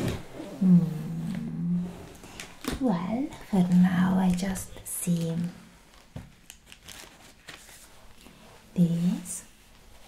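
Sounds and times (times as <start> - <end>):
woman humming softly: 0.4 - 2.1.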